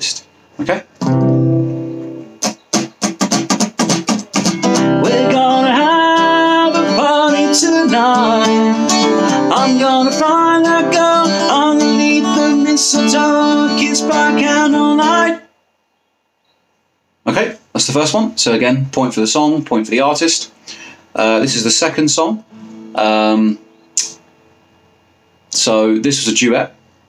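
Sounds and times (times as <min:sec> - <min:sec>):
acoustic guitar strumming: 0:01.0 - 0:15.5, 0:22.5 - 0:25.0
wordless vocal melody: 0:04.6 - 0:15.5.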